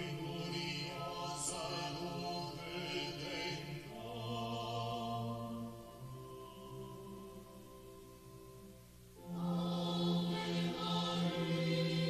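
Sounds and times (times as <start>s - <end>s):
voices singing a slow hymn: 0.0s - 12.0s.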